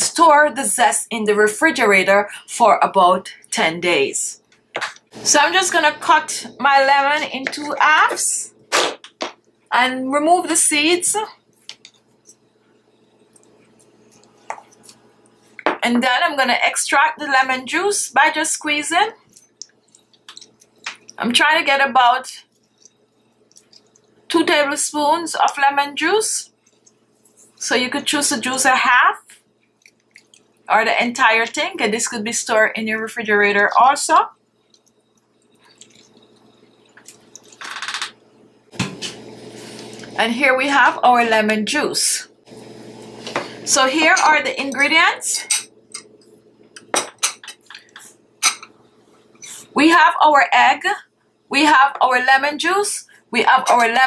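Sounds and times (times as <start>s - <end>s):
juice dripping: 11.5s - 15.6s, 19.2s - 21.2s, 22.4s - 24.3s, 26.5s - 27.6s, 29.4s - 30.7s, 34.3s - 40.2s
wet squishes of lemon squeezed: 19.3s - 21.2s, 22.5s - 24.2s, 29.7s - 30.7s, 34.6s - 37.6s.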